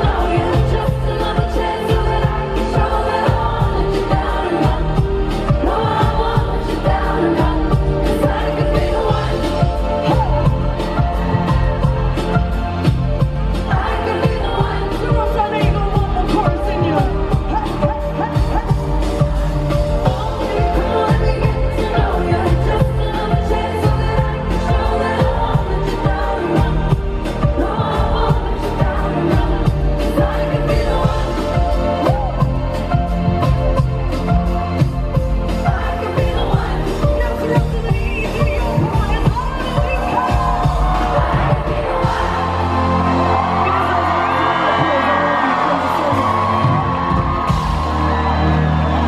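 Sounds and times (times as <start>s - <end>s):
steady drum beat: 0.0s - 43.6s
female lead vocal: 0.0s - 47.8s
live pop band playing: 0.0s - 49.0s.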